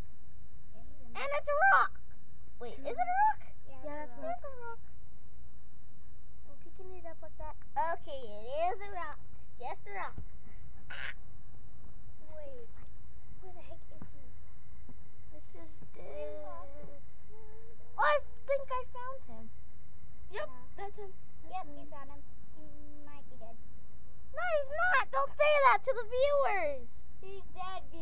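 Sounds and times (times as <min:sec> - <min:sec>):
children's high-pitched voices: 0:00.8 - 0:02.0, 0:15.4 - 0:19.5, 0:24.4 - 0:28.0.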